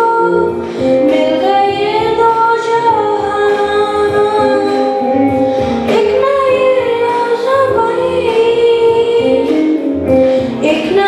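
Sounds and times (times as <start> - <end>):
boy singing into a microphone: 0.0 - 11.0
keyboard chords: 0.0 - 11.0.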